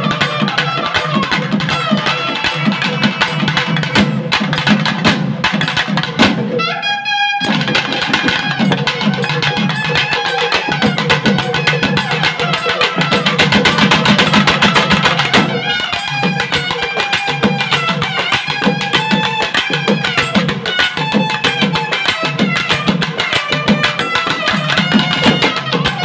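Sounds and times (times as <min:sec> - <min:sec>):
fast drumming: 0:00.0 - 0:06.6, 0:07.4 - 0:26.0.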